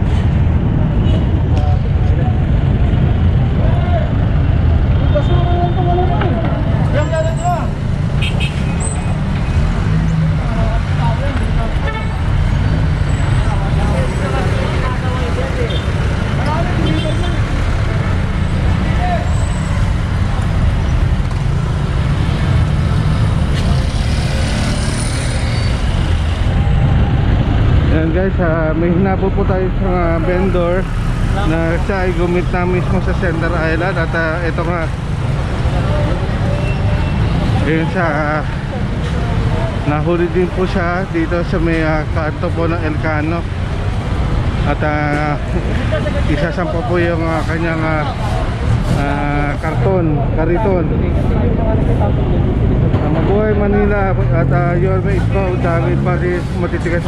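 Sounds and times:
traffic rumble: 0.0s - 57.0s
people talking nearby: 44.6s - 57.0s.

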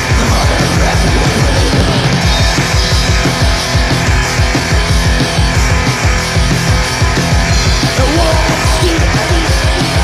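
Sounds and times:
distorted guitar and bass: 0.0s - 10.0s
extreme metal music: 0.0s - 10.0s
fast drum beat: 0.0s - 10.0s.

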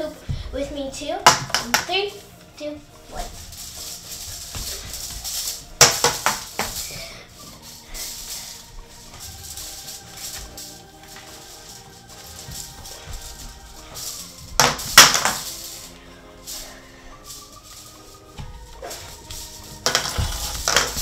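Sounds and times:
background music with held notes: 0.0s - 21.0s
plastic hula hoops clattering: 0.0s - 21.0s.

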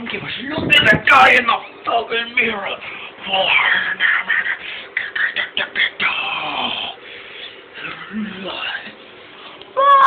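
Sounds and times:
person shrieking: 9.8s - 10.0s.

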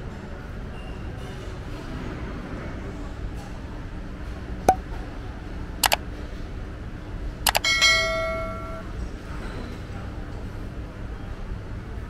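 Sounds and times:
bright bell ding: 7.5s - 8.9s.

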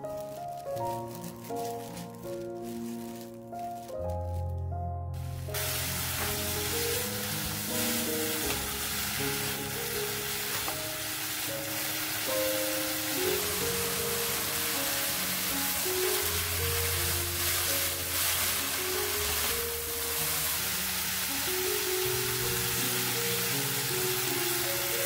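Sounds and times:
background music: 0.0s - 25.0s
fern stems sizzling in frying pan: 0.0s - 25.0s.

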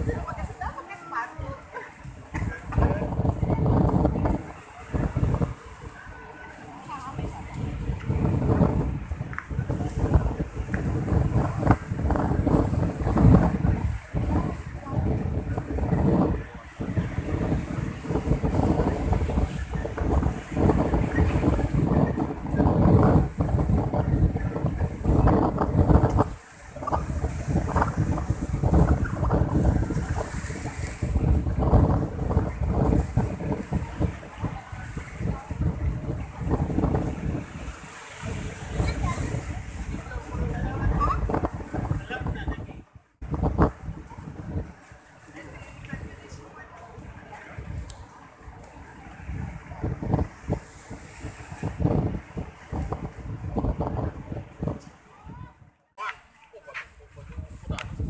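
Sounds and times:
crowd of people talking: 0.0s - 58.0s
wind buffeting microphone: 0.0s - 58.0s.

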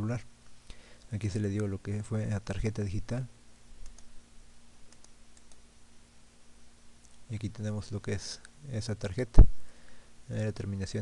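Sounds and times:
low steady hum: 0.0s - 11.0s
computer mouse clicks: 3.8s - 4.1s, 4.9s - 5.6s.

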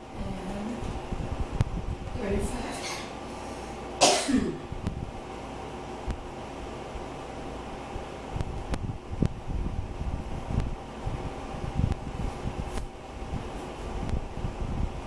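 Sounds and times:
fan hum: 0.0s - 15.0s
person coughing: 4.0s - 4.7s.

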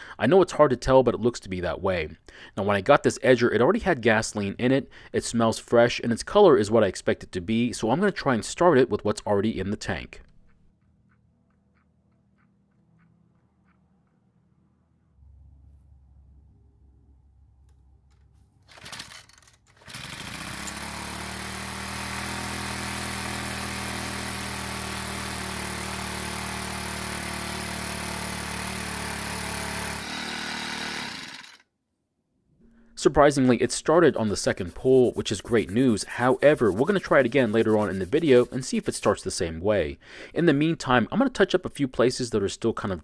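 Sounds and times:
small engine pull-started: 18.7s - 31.6s.

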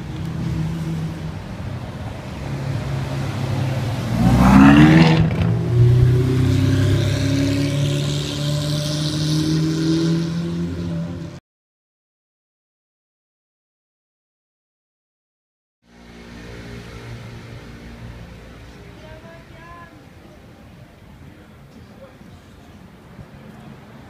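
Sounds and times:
sports car engine revving: 2.3s - 11.4s.

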